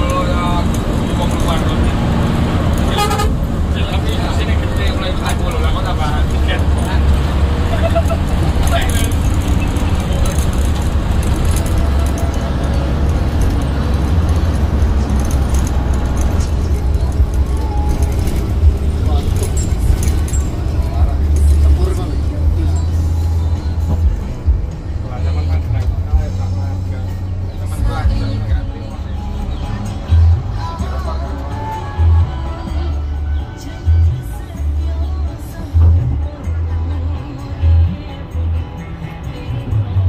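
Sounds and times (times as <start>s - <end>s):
bus engine and road drone: 0.0s - 40.0s
music playing: 0.0s - 40.0s
voices: 0.0s - 40.0s.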